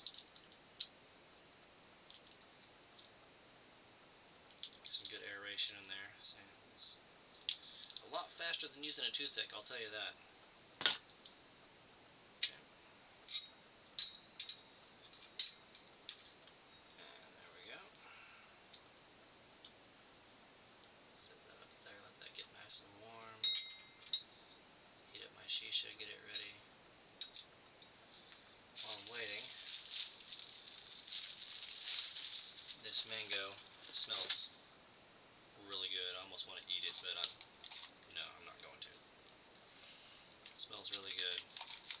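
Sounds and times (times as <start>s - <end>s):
faint high whine: 0.0s - 42.0s.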